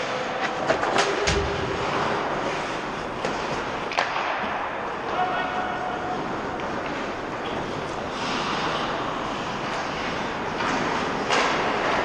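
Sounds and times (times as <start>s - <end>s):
sharp clacks of sticks and puck: 0.0s - 12.0s.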